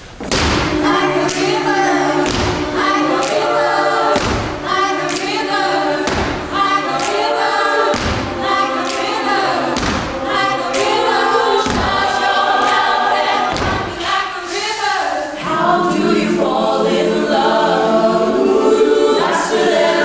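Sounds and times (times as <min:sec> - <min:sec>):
a cappella group singing: 0:00.3 - 0:20.0
deep thump on the beat: 0:04.2 - 0:04.6, 0:07.9 - 0:08.3, 0:09.8 - 0:10.1, 0:11.6 - 0:12.0, 0:13.5 - 0:13.9.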